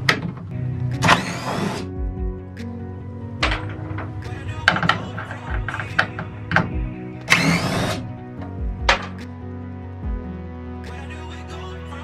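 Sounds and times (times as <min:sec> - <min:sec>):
background music: 0:00.0 - 0:12.0
impact driver motor whine: 0:01.0 - 0:01.9, 0:07.3 - 0:08.0.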